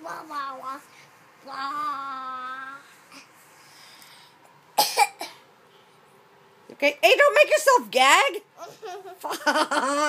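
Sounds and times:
child gagging and coughing: 4.8s - 5.4s.

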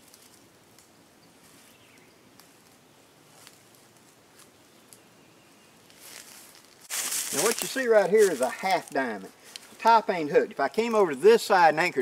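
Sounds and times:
soft ticks and rustles: 0.0s - 5.1s.

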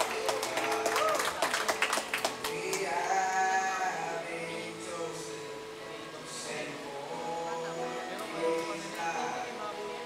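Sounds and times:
musical accompaniment: 0.0s - 10.0s
person singing into a microphone: 2.4s - 10.0s.

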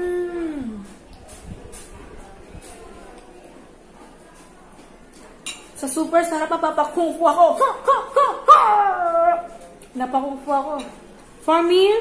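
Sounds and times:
woman's voice: 0.0s - 1.0s, 5.8s - 12.0s.

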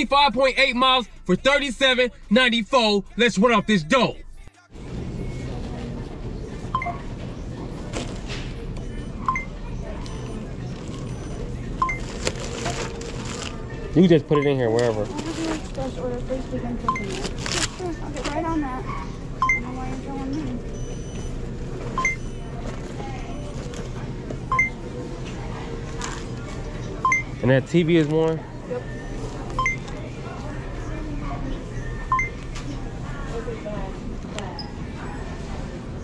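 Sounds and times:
murmur of voices: 0.0s - 36.0s
short electronic beep: 22.0s - 22.4s.

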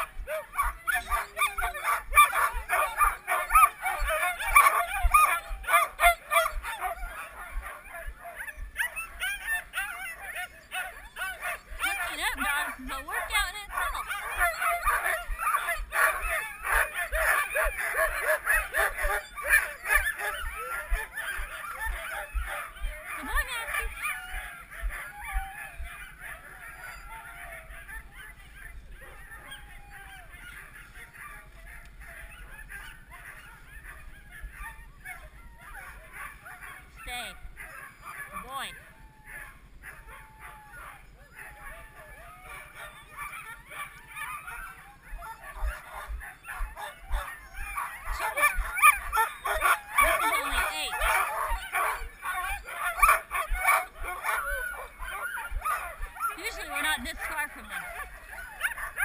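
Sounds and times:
dogs barking and howling: 0.0s - 59.0s.

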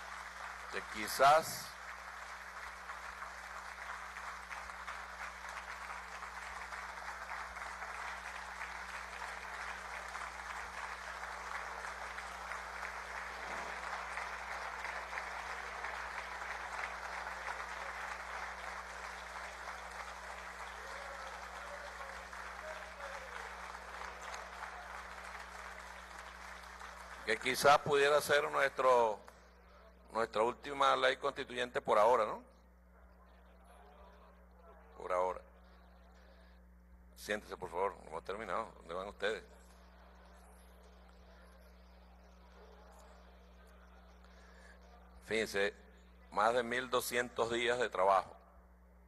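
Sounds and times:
crowd applauding: 0.0s - 29.4s.

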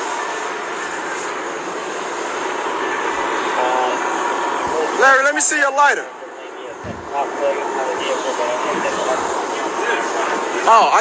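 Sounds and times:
steady rushing noise: 0.1s - 11.0s
distant voices: 0.7s - 11.0s.

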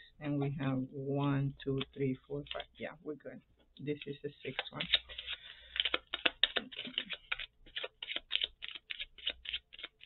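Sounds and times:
cards being shuffled by hand: 3.9s - 10.0s.

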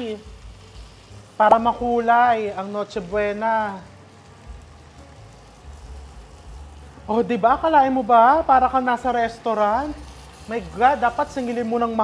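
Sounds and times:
ribs sizzling in grill pan: 0.0s - 12.0s.

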